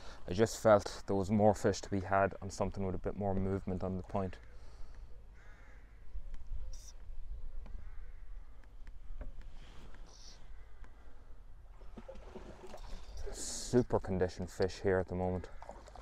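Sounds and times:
harsh bird calls: 0:04.2 - 0:11.3.

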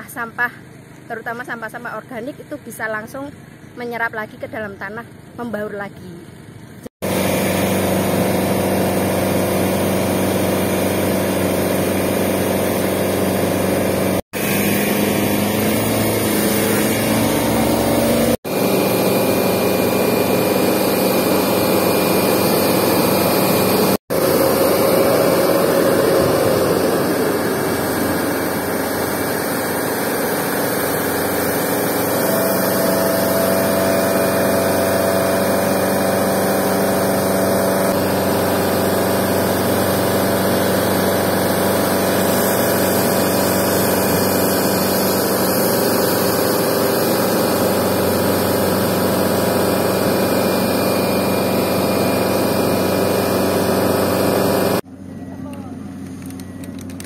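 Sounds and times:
fire truck pump running: 0:06.2 - 0:57.0
nozzle spraying water jet: 0:07.0 - 0:54.8.

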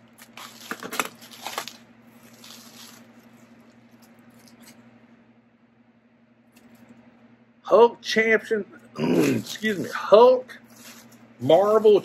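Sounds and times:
bubble wrap crinkling: 0:00.0 - 0:04.9, 0:09.1 - 0:12.0
steady low hum: 0:00.0 - 0:12.0.

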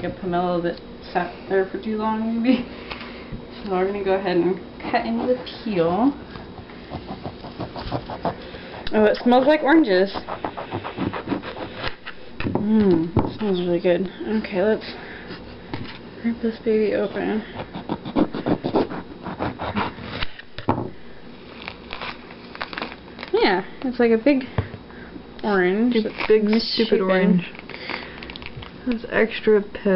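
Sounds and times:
knife cutting through fruit peel: 0:06.9 - 0:12.2, 0:17.1 - 0:20.3
peel crackling pulled apart: 0:21.5 - 0:23.4, 0:27.5 - 0:28.8.

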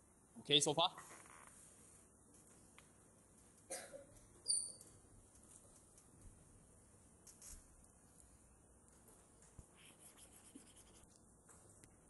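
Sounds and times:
stylus scratching on tablet screen: 0:09.8 - 0:11.2.

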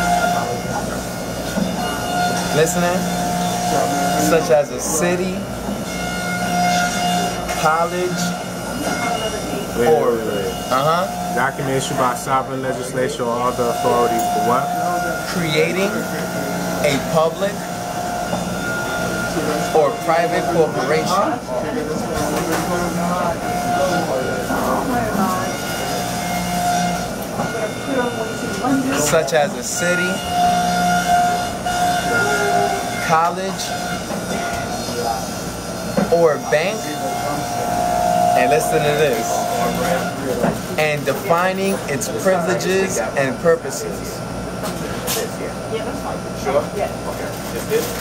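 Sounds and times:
faint voices: 0:00.0 - 0:05.9, 0:07.0 - 0:48.0
mechanical hum: 0:00.0 - 0:48.0
noisy background: 0:00.0 - 0:48.0
held tones: 0:36.1 - 0:41.3
man speaking: 0:36.1 - 0:44.2.

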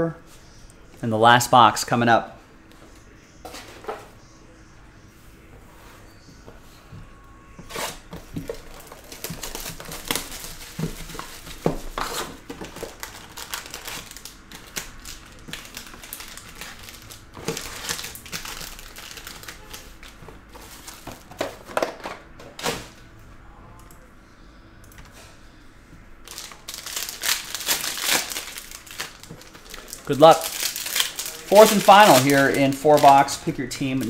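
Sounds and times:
foil wrappers crinkling: 0:07.7 - 0:22.0, 0:26.2 - 0:34.0.

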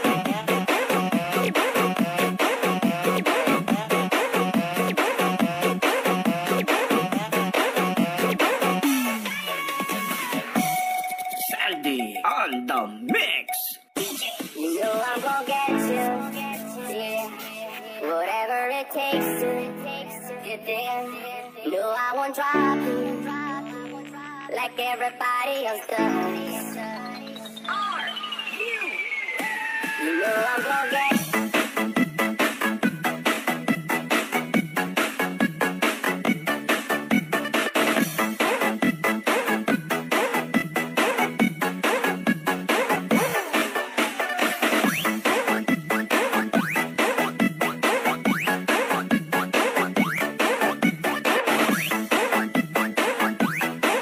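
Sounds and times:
fast electronic dance beat: 0:00.0 - 0:17.3, 0:28.5 - 0:54.0
pitched vocal sample: 0:11.4 - 0:18.0.

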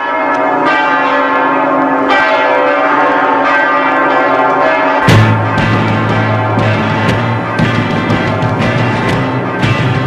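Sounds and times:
bells ringing in a peal: 0:00.0 - 0:10.0.

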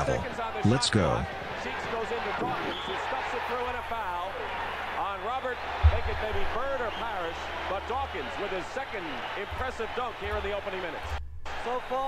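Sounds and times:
man talking: 0:00.0 - 0:01.3
arena crowd noise: 0:00.0 - 0:12.0.

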